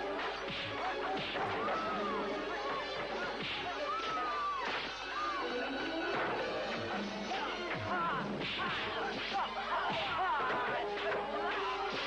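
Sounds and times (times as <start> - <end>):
background music: 0.0 - 12.0
punches and crashes: 0.1 - 5.0.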